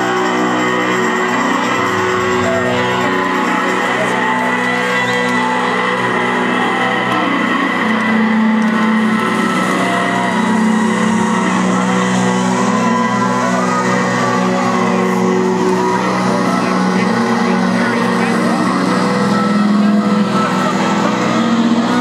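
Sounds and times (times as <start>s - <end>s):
live rock band droning chords: 0.0s - 22.0s.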